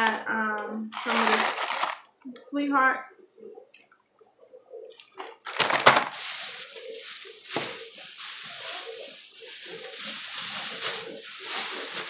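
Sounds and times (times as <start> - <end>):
plastic bag rustling and crinkling: 0.9 - 2.1, 5.2 - 12.0.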